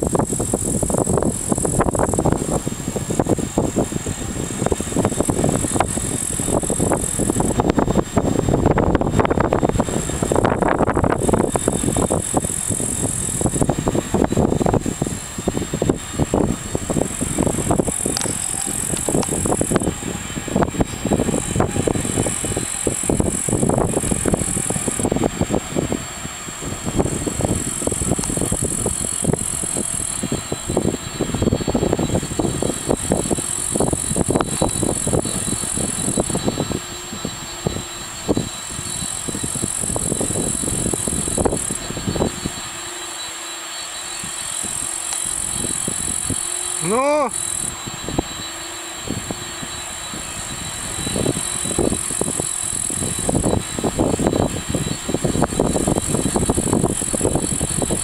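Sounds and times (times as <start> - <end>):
distant jet engines humming: 0.0 - 58.0
wind buffeting microphone: 0.0 - 58.0.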